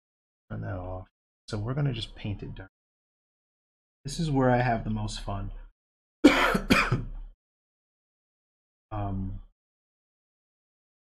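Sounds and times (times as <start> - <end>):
man coughing: 6.2 - 7.2.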